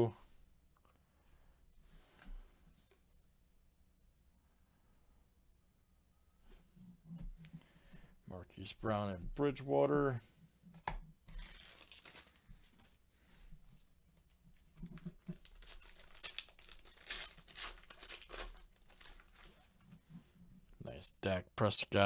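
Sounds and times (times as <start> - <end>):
wrapper tearing and crinkling: 11.4 - 12.9, 14.9 - 19.9.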